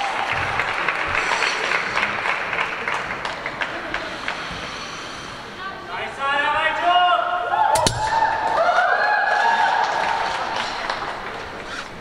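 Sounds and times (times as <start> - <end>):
man speaking over public address: 5.9 - 7.4.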